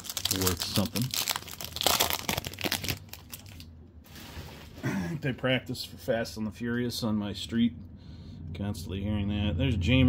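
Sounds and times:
foil wrapper crinkling: 0.0s - 4.5s.

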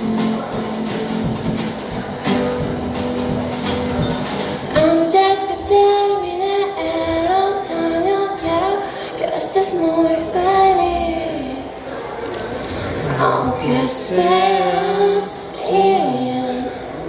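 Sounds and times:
drum kit: 0.0s - 5.0s
strummed acoustic guitar: 0.0s - 8.9s
woman singing: 4.7s - 11.9s, 13.0s - 16.8s.

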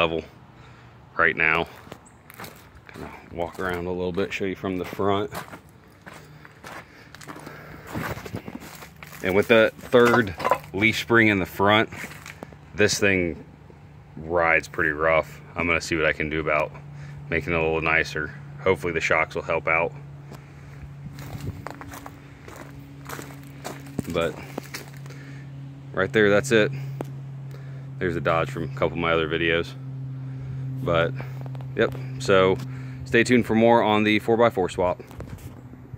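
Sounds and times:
steady low hum: 0.0s - 35.9s
footsteps on gravel and dry leaves: 1.4s - 13.0s, 20.0s - 25.7s, 34.9s - 35.7s.

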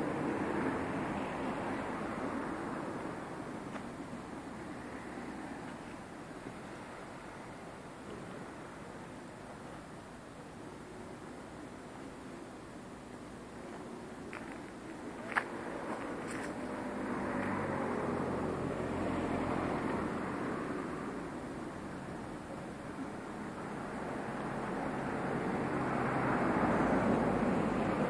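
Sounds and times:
road traffic passing: 0.0s - 28.0s.

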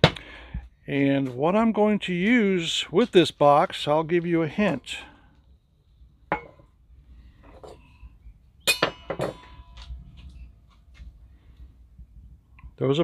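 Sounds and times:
metal bowl clinks: 8.7s - 9.8s.

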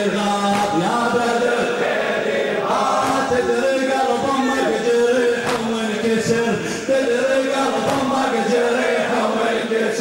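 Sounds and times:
men chanting a lament: 0.0s - 10.0s.

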